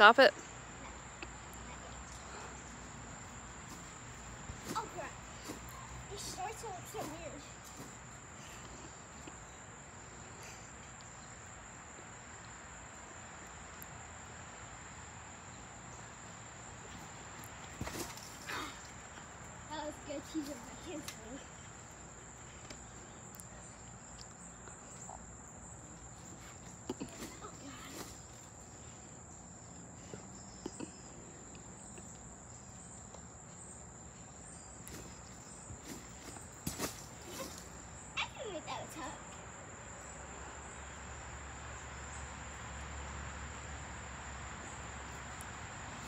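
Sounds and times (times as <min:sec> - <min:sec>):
crickets chirping: 0:00.0 - 0:46.0
feet thumping on trampoline: 0:03.2 - 0:08.2, 0:16.8 - 0:21.3, 0:26.1 - 0:28.6, 0:34.8 - 0:37.9.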